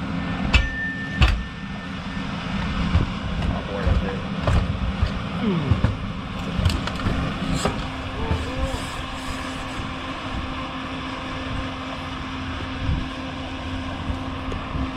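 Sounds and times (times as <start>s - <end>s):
fire engine motor humming: 0.0s - 14.9s.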